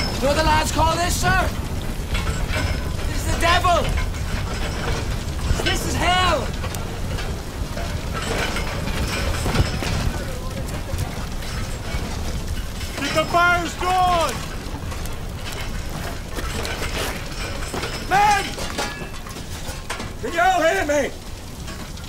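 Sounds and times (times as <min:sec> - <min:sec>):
low rumble and hiss: 0:00.0 - 0:22.0
men shouting: 0:13.0 - 0:14.5, 0:18.0 - 0:18.6.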